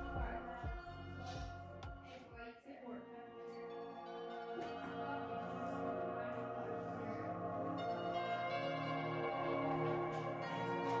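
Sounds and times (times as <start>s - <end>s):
music with ringing bell-like tones: 3.5s - 11.0s.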